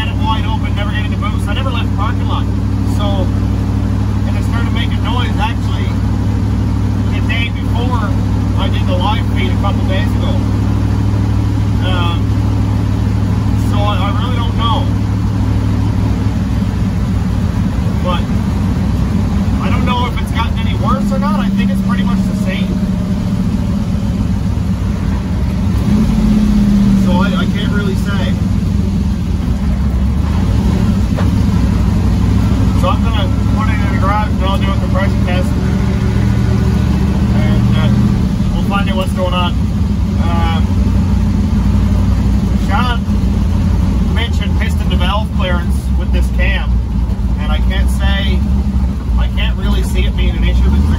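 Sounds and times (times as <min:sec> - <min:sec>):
engine low drone: 0:00.0 - 0:50.9
road noise: 0:00.0 - 0:50.9.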